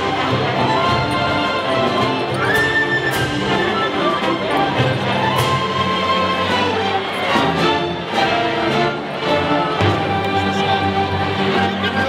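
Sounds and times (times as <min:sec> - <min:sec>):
orchestra playing a march: 0:00.0 - 0:12.0.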